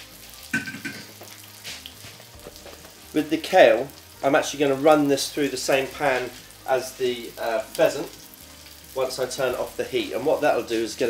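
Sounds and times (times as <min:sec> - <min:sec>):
food sizzling in oil: 0:00.0 - 0:11.0.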